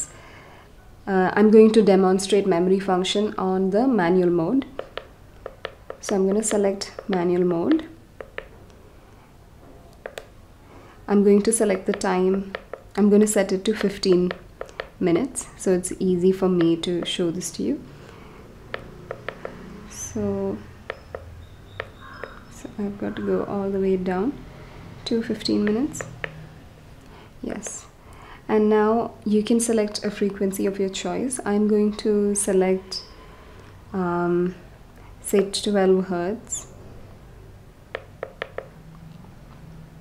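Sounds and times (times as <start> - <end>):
faint low hum: 0.0 - 40.0
keypad button clicks: 4.7 - 8.5, 10.0 - 10.3, 13.6 - 15.0, 18.7 - 19.6, 20.8 - 22.6, 25.4 - 26.4, 37.9 - 38.8.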